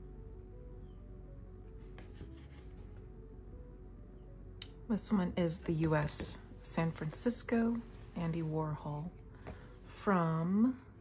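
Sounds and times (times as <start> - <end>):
quiet background music: 0.0 - 11.0
paper postcard rubbing: 1.9 - 2.9.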